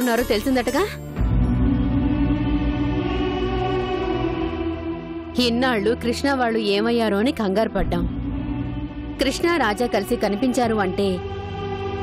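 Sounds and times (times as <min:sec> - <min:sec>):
deep low drone: 0:01.2 - 0:06.0, 0:07.8 - 0:12.0.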